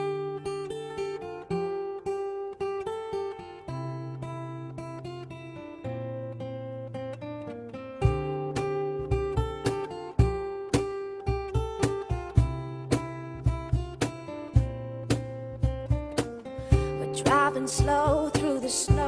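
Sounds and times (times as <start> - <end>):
acoustic guitar picking: 0.0 - 19.0
low rhythmic thumps: 8.1 - 19.0.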